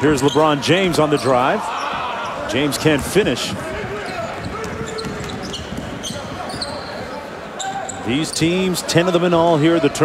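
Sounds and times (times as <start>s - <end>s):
sneakers squeaking on court: 0.0s - 3.1s, 3.9s - 8.7s
arena crowd noise: 0.0s - 10.0s.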